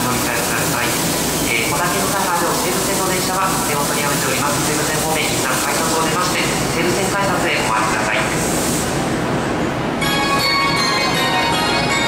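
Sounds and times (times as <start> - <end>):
busy platform noise: 0.0 - 12.0
public address announcement: 0.0 - 12.0.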